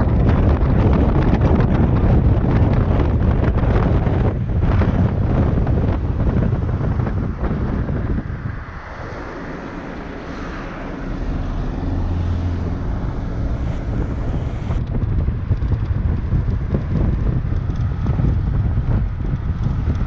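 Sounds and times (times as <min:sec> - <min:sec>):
vehicle engine and road noise: 0:00.0 - 0:20.0
wind rushing over microphone: 0:00.0 - 0:20.0.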